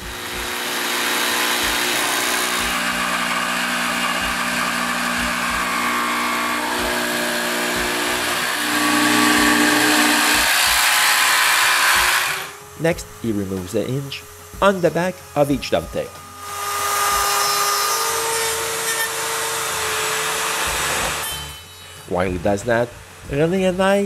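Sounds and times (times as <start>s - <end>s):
jigsaw cutting wood: 0.0s - 22.4s.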